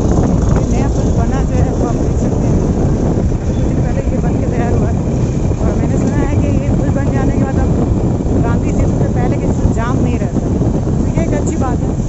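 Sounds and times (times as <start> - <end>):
motorcycle engine and road noise: 0.0 - 12.0
wind rushing over microphone: 0.0 - 12.0.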